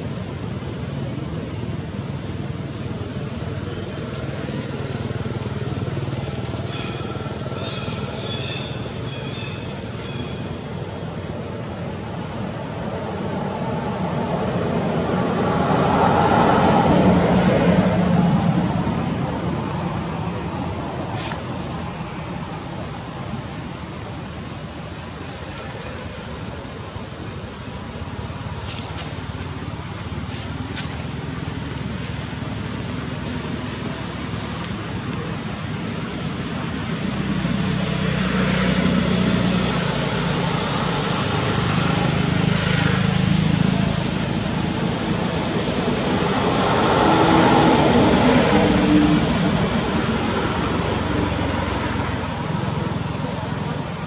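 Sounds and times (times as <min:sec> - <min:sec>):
faint high calls: 0:04.6 - 0:10.9
vehicle passing: 0:12.2 - 0:22.7, 0:27.5 - 0:54.0.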